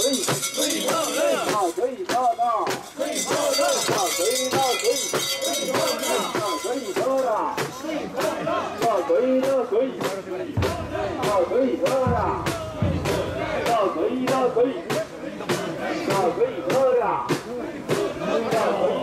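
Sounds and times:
group chanting in rhythm: 0:00.0 - 0:19.0.

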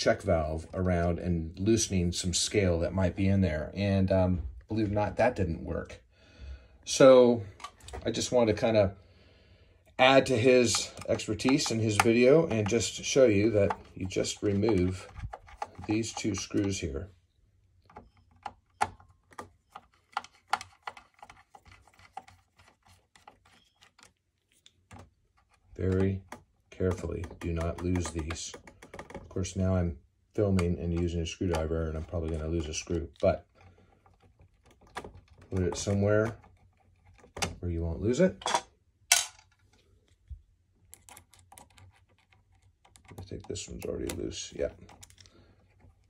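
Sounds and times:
screwdriver clicking and scraping: 0:10.0 - 0:16.8, 0:17.9 - 0:29.3.

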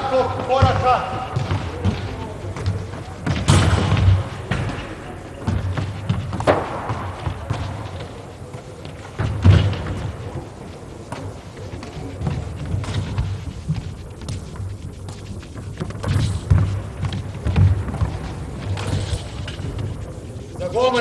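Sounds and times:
handballs thudding in echoing hall: 0:00.0 - 0:21.0.

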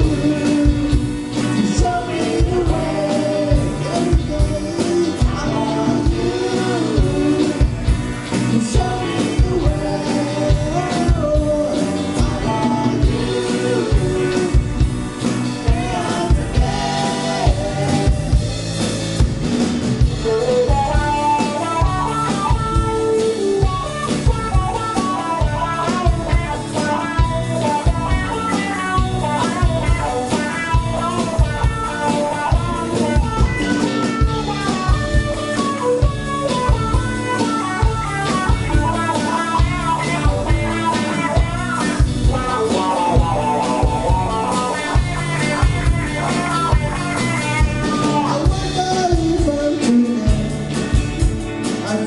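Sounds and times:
drum kit beat: 0:00.0 - 0:52.0
electric guitar: 0:00.0 - 0:52.0.

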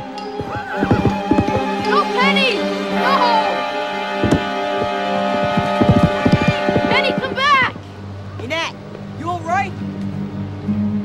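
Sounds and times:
horse galloping hoofbeats: 0:00.0 - 0:07.9
background music with held tones: 0:00.0 - 0:11.0.

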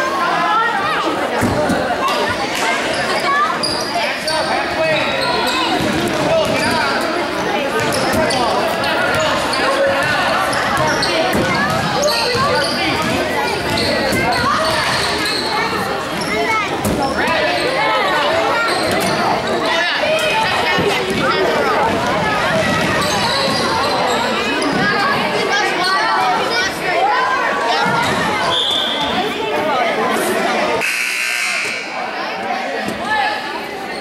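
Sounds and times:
spectators chattering: 0:00.0 - 0:34.0.

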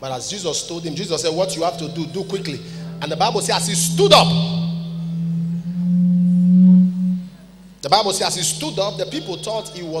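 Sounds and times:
low held keyboard note: 0:00.7 - 0:10.0.

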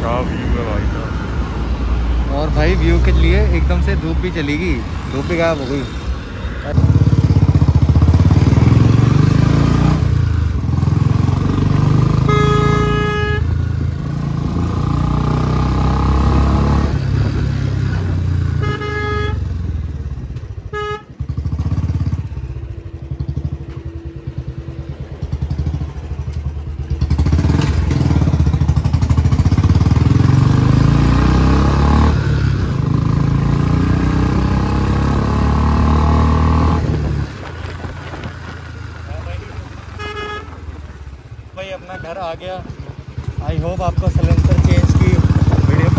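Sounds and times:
motorcycle engine running loud: 0:06.7 - 0:37.4, 0:42.4 - 0:45.9
vehicle horn: 0:12.0 - 0:13.8, 0:18.5 - 0:19.6, 0:20.6 - 0:21.3, 0:39.9 - 0:40.7.

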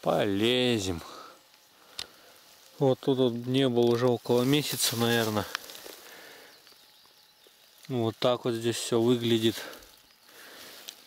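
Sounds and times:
faint rustles: 0:00.2 - 0:11.0
light ticks: 0:01.4 - 0:04.1, 0:05.4 - 0:06.0, 0:09.7 - 0:11.0
man's voice: 0:02.8 - 0:05.6.

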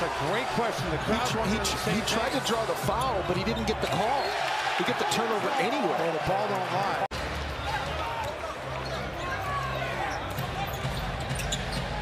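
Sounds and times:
shoe squeaks and ticks: 0:10.2 - 0:12.0.

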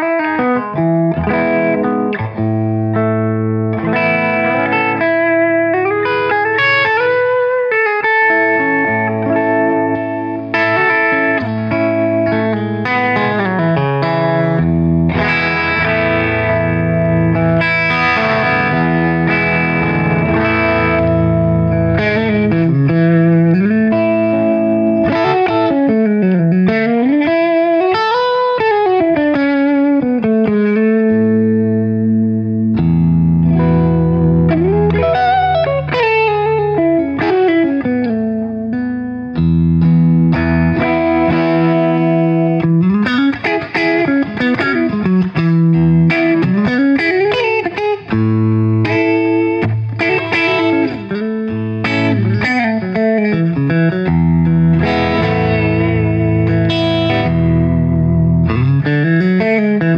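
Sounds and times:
electric guitar chords: 0:00.0 - 0:59.9.

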